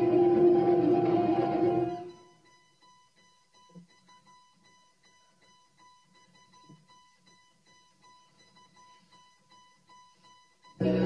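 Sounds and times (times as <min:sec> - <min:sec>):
rapid high electronic beep: 0:00.0 - 0:02.3.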